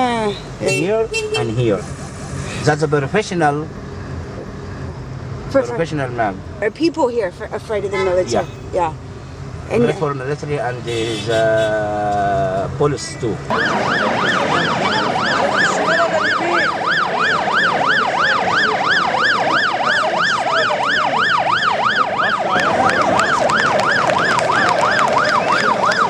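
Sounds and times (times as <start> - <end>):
electronic siren yelping: 1.8 - 2.5, 13.5 - 26.0
crowd noise: 13.5 - 26.0.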